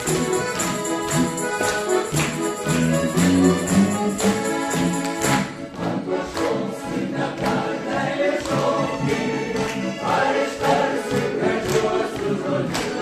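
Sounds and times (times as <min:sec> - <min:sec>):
jingle ring shaken: 0:00.0 - 0:05.6
accordions playing: 0:00.0 - 0:13.0
mixed choir singing folk song: 0:03.7 - 0:13.0.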